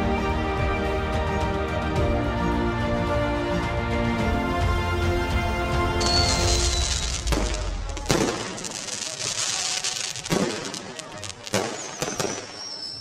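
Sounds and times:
high whistling tone: 6.0s - 7.2s, 11.8s - 13.0s
fireworks bangs: 6.0s - 13.0s
fireworks crackling: 6.0s - 13.0s.

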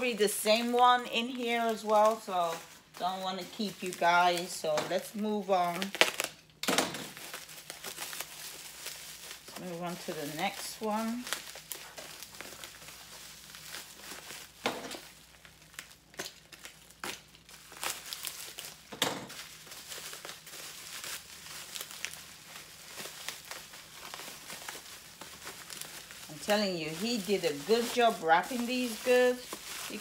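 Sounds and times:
plastic packaging crinkling and tearing: 0.0s - 30.0s.

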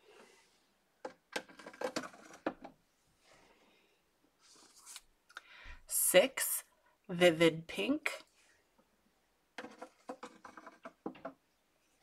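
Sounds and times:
plastic markers clicking and knocking: 9.6s - 11.4s.

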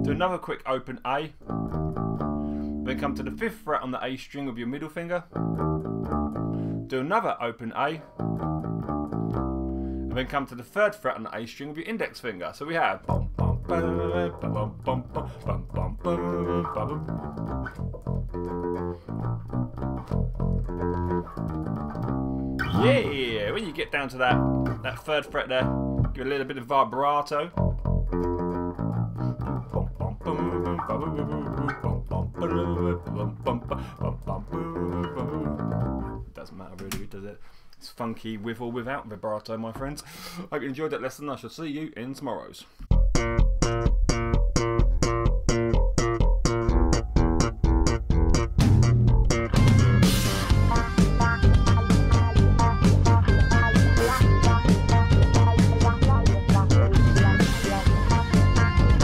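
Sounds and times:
electric bass guitar notes: 0.0s - 0.4s, 1.3s - 3.5s, 5.2s - 7.0s, 8.0s - 10.7s, 12.9s - 26.5s, 27.4s - 36.4s, 42.9s - 59.0s.

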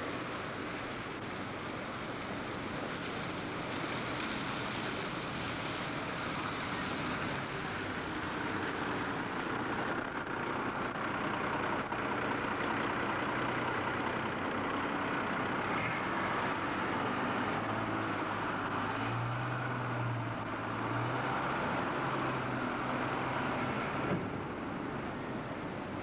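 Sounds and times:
bus diesel engine drone: 0.0s - 26.0s
road and traffic noise: 0.0s - 26.0s
faint high squeals: 7.3s - 8.1s, 9.1s - 11.6s.

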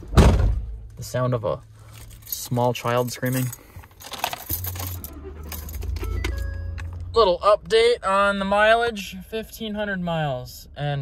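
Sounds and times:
keys jangling: 1.9s - 7.0s
pickup engine starting and rumbling: 3.5s - 11.0s.

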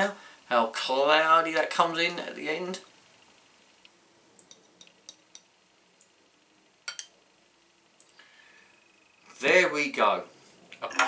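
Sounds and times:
small glass ticks: 3.8s - 6.1s.

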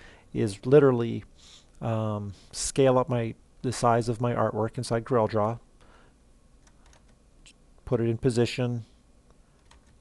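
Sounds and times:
man speaking: 0.3s - 5.7s, 7.8s - 8.9s
computer mouse and key clicks: 6.6s - 7.2s, 9.6s - 10.0s.

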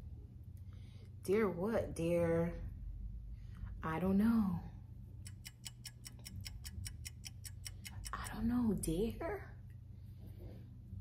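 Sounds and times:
fast ticking countdown timer: 5.2s - 8.5s.

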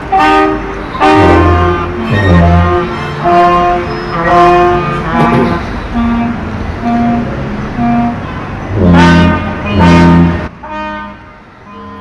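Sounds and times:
brass band chords: 0.1s - 11.2s
low tuba note: 4.3s - 6.3s.

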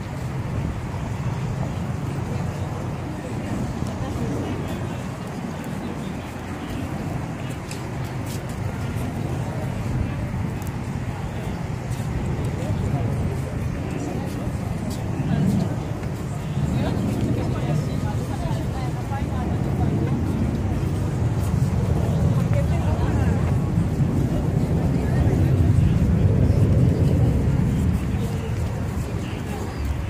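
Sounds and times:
passing motor vehicle rumble: 0.0s - 30.0s.

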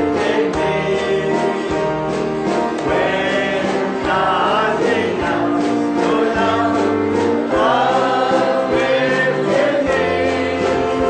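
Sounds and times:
group singing gospel song: 0.0s - 11.0s
instrumental accompaniment: 0.0s - 11.0s.

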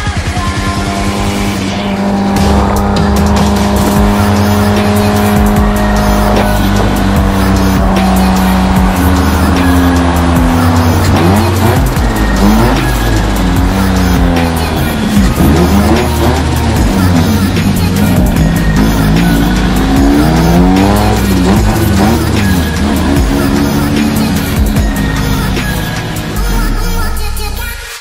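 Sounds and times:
car engine revving: 0.0s - 28.0s
music with long held tones: 0.0s - 28.0s
tyres squealing: 1.7s - 27.0s.

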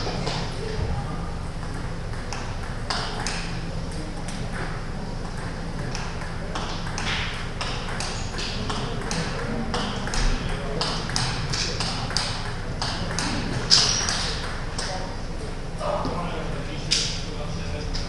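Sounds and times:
table tennis balls clicking: 1.6s - 3.6s, 4.2s - 15.0s.

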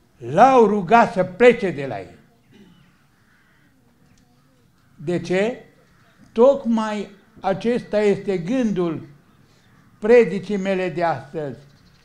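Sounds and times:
man speaking: 0.2s - 2.2s, 5.0s - 5.8s, 6.4s - 9.2s, 10.0s - 11.6s.

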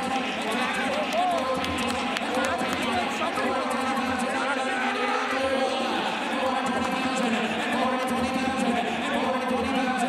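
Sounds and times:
auctioneer's rapid bid chant: 0.0s - 10.0s
crowd chatter: 0.0s - 10.0s.

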